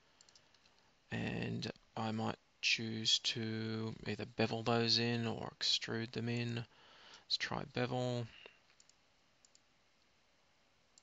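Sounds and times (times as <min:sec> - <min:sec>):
computer mouse clicks: 0:00.2 - 0:00.8, 0:08.7 - 0:09.7.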